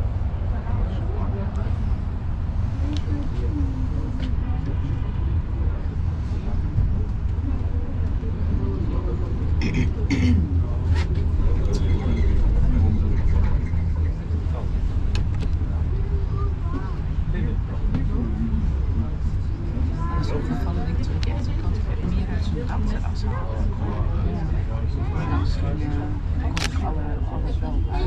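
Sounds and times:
cable car rumble: 0.0s - 28.0s.

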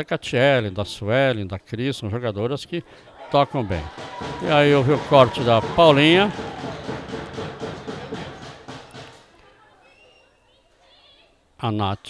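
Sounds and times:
football match broadcast ambience: 2.8s - 10.8s.

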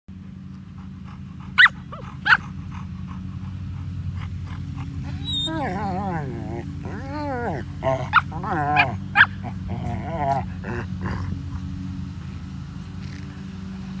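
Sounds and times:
dogs yipping: 1.0s - 11.4s
dogs whining howls: 5.0s - 10.5s.

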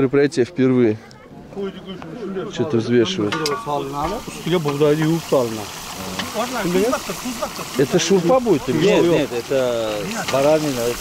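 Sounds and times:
people talking: 0.0s - 11.0s
meat sizzling in oil: 3.6s - 11.0s.

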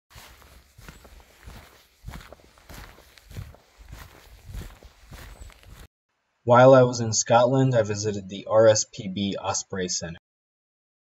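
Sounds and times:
footsteps crunching on gravel: 0.1s - 5.9s.

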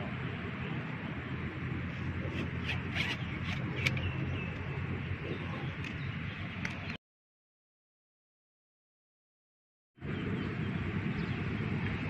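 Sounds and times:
low outdoor rumble: 0.0s - 7.0s, 10.0s - 12.0s.

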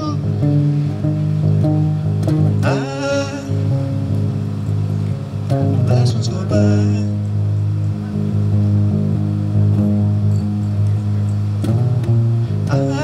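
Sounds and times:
electric bass guitar: 0.0s - 13.0s.

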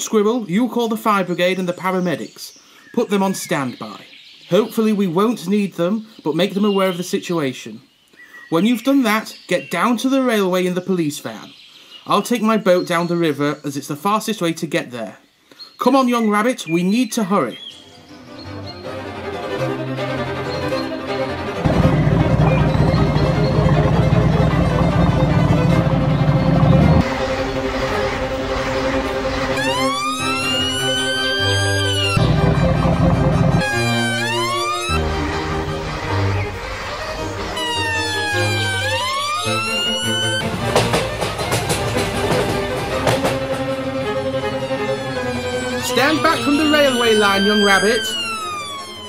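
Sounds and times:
background music: 17.8s - 49.0s
siren wailing: 19.9s - 40.8s, 43.2s - 49.0s
low rumble: 21.7s - 29.6s.

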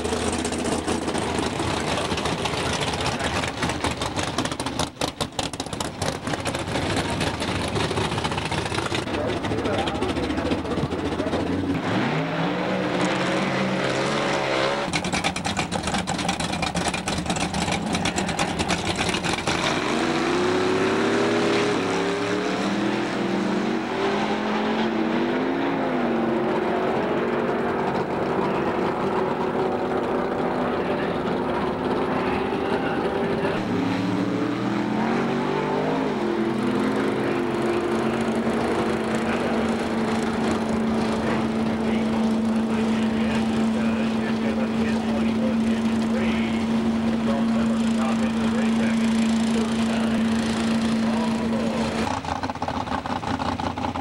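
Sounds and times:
drag racing cars accelerating: 0.0s - 54.0s.

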